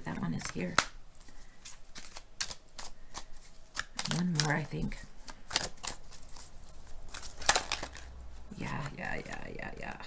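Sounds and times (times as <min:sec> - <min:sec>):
cards being shuffled: 0:00.1 - 0:10.0.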